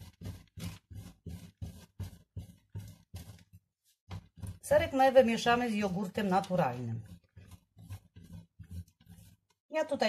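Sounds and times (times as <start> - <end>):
cheese grating on metal grater: 0.0 - 10.0.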